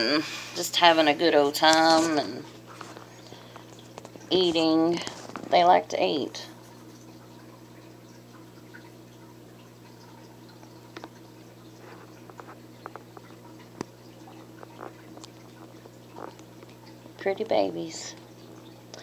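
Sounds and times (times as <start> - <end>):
aquarium equipment hum: 0.0 - 19.0
small clicks and ticks: 2.6 - 5.6, 9.6 - 19.0.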